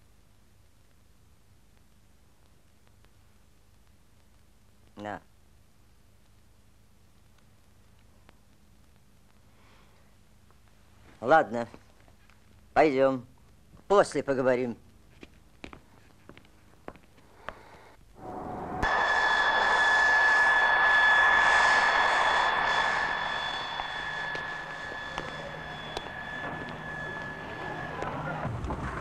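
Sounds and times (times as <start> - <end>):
aircraft engine whine and roar: 18.2 - 29.0.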